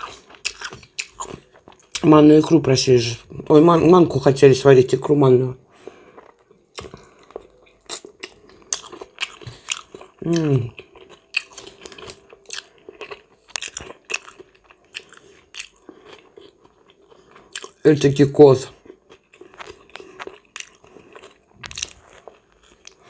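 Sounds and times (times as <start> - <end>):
person chewing fish: 0.0 - 2.1, 5.8 - 17.8, 18.7 - 23.0.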